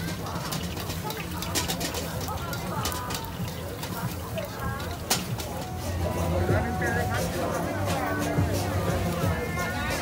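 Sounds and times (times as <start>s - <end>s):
distant chatter of people: 0.0s - 10.0s.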